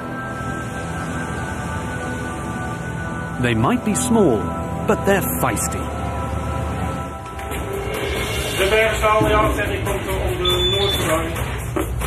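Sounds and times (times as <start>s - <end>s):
background music: 0.0s - 12.0s
person talking: 3.4s - 5.9s.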